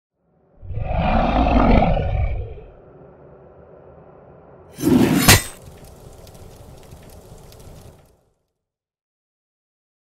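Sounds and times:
rushing swell with deep rumble: 2.0 - 4.8.

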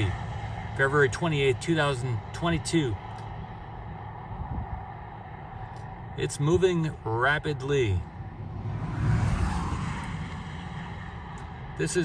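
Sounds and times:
outdoor rumble and hiss: 0.0 - 12.0.

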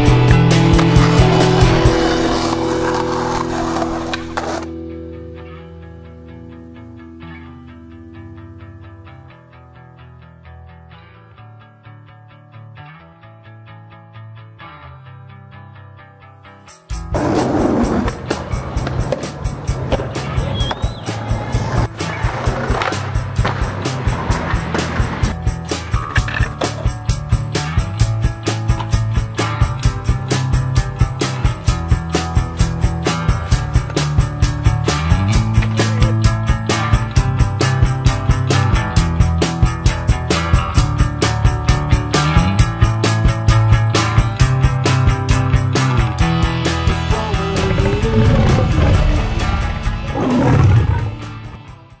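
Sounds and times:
music with drum beat and bass: 0.0 - 4.7, 16.8 - 52.0
skateboard wheels rolling on pavement: 0.2 - 4.7, 17.1 - 27.1
lion roar: 47.8 - 51.6.

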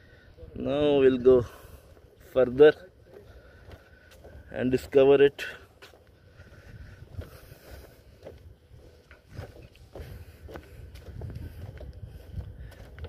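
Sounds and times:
footsteps on wooden boardwalk: 1.4 - 13.0.

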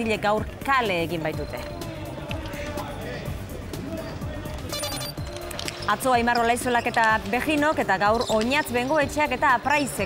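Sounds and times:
faint crowd voices: 0.0 - 10.0
news music bed: 1.0 - 6.9
high-pitched call: 4.7 - 5.2.

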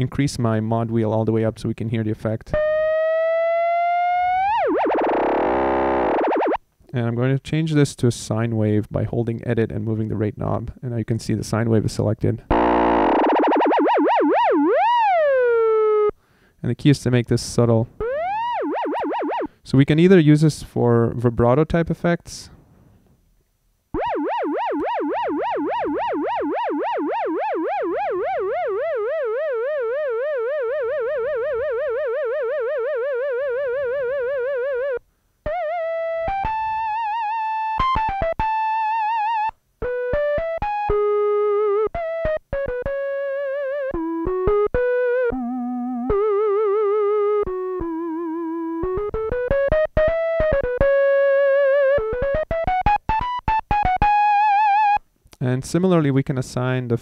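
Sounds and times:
synthesizer flute melody with vibrato: 2.6 - 6.6, 12.5 - 16.2, 18.0 - 19.6, 24.0 - 55.0.

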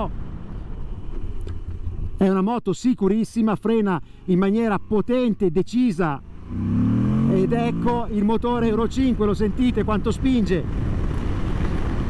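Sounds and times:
motorcycle engine rumble: 0.0 - 2.2, 4.0 - 12.0.

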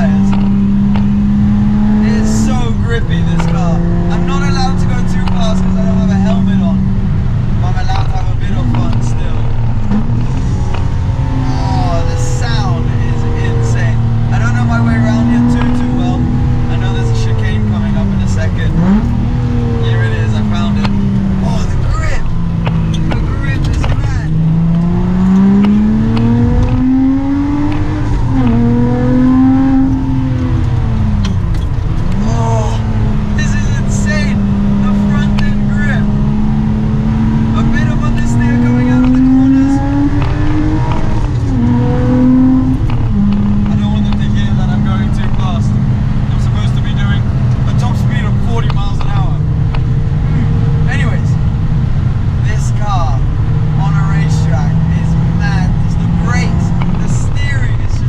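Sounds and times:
car engine accelerating hard: 0.0 - 58.0.

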